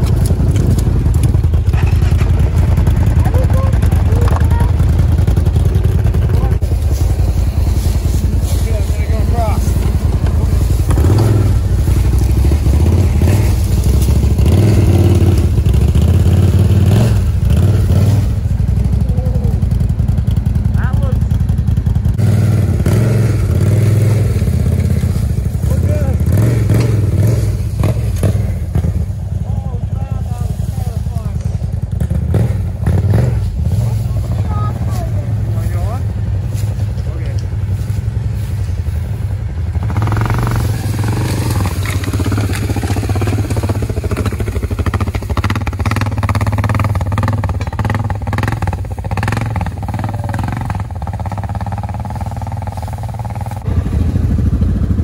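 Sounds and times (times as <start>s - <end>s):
engines idling: 0.0s - 55.0s
people talking: 3.1s - 4.9s, 6.2s - 6.7s, 8.4s - 10.6s, 19.0s - 19.7s, 20.7s - 21.3s, 25.6s - 26.3s, 29.4s - 31.6s, 33.7s - 36.2s, 36.8s - 37.5s, 49.9s - 50.7s.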